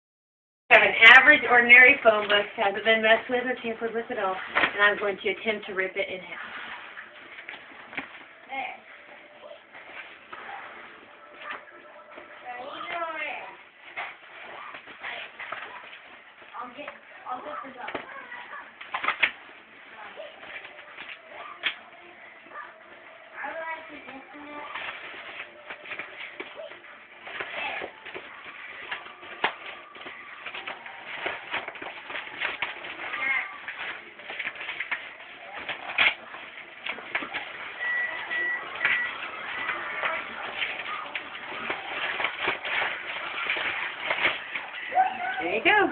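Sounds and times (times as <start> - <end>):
phone book paper ripping: 24.4 - 45.8.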